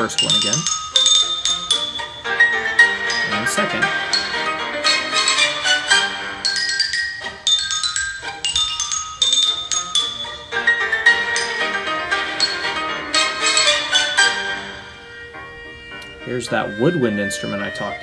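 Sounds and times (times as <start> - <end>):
xylophone melody: 0.0 - 15.2
orchestral music: 0.0 - 18.0.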